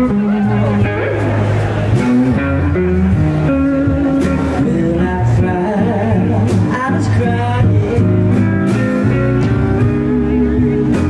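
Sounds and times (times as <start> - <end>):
bass guitar: 0.0 - 11.0
drums with cymbal hits: 0.0 - 11.0
electric guitar lead: 0.0 - 11.0.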